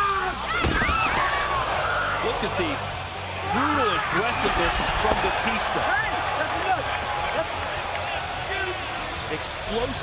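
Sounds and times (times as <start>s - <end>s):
crowd shouting in arena: 0.0s - 10.0s.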